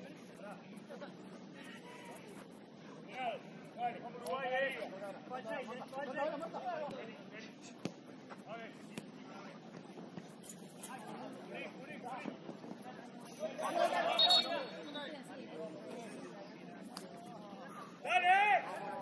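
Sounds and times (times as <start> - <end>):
distant shouts and chatter: 0.0 - 7.8, 13.0 - 19.0.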